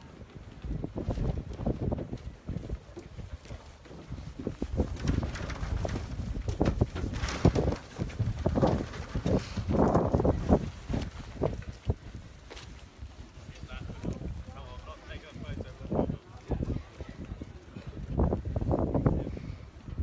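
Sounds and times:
footsteps on gangway: 0:00.0 - 0:20.0
wind rumbling on microphone: 0:00.0 - 0:20.0.

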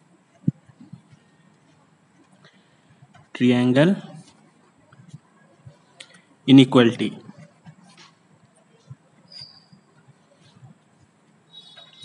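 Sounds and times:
short high squeak: 0:09.3 - 0:09.9, 0:11.5 - 0:12.0.

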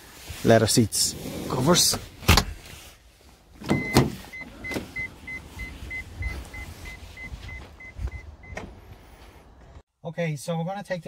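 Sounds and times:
door clunks: 0:03.6 - 0:05.0, 0:08.4 - 0:08.8
electronic warning beeps: 0:03.7 - 0:08.6.

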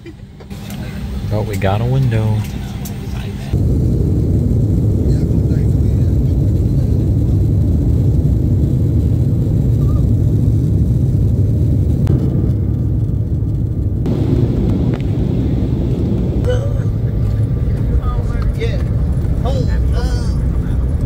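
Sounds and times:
jet engines rumbling: 0:00.0 - 0:21.0.

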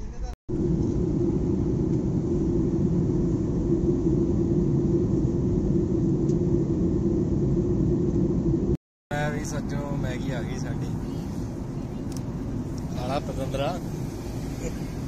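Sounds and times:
jet airliner cabin rumble: 0:00.0 - 0:15.0.

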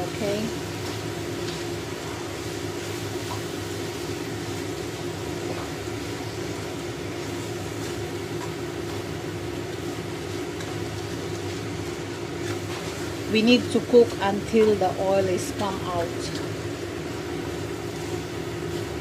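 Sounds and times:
low machine hum: 0:00.0 - 0:19.0
paste frying in a wok: 0:00.0 - 0:19.0
wooden spatula scraping wok: 0:12.3 - 0:13.1.

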